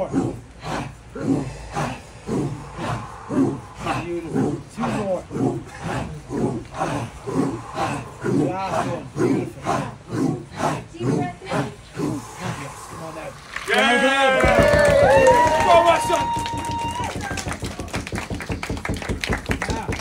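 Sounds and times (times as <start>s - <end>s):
man breathing forcefully: 0.0s - 16.0s
people cheering and shouting: 5.7s - 18.6s, 19.6s - 20.0s
group clapping: 12.2s - 20.0s.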